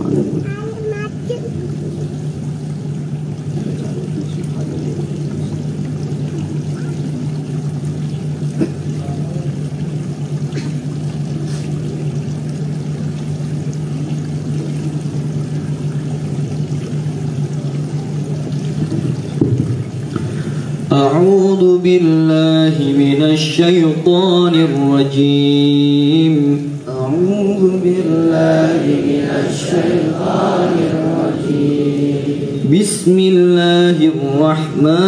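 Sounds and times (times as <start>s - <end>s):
low electrical hum: 0.0s - 35.0s.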